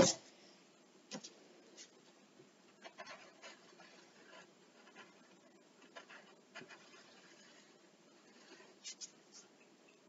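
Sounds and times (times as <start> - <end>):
pencil scratching on paper: 2.8 - 9.5.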